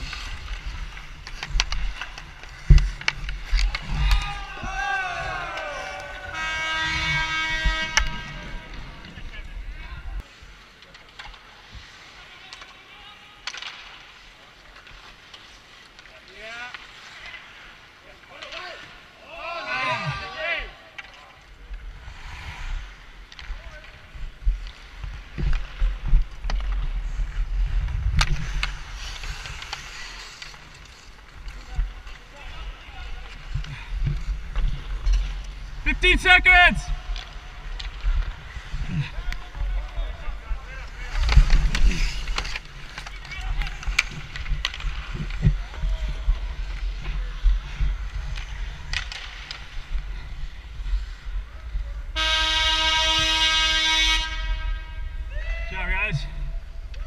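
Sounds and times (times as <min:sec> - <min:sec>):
hockey sticks or puck clacking: 0:00.0 - 0:09.5, 0:10.6 - 0:51.3
players calling out: 0:03.5 - 0:06.8, 0:35.8 - 0:37.7
wind rumbling on microphone: 0:24.0 - 0:30.2.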